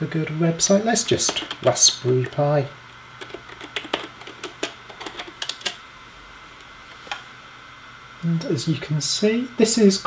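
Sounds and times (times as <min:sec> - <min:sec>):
computer keyboard typing: 0:01.2 - 0:02.4, 0:03.2 - 0:05.8.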